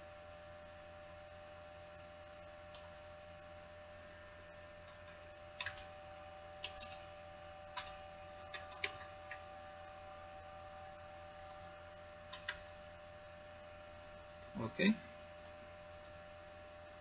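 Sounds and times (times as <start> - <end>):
steady electrical hum: 0.0 - 17.0
keyboard and mouse clicks: 2.7 - 3.0, 3.8 - 4.2, 4.8 - 5.9, 6.6 - 7.0, 7.7 - 9.4, 12.3 - 12.6.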